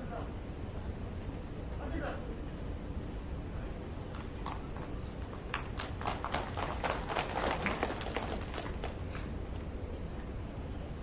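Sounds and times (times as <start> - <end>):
low hall hum: 0.0 - 11.0
scattered handclaps: 4.1 - 9.4.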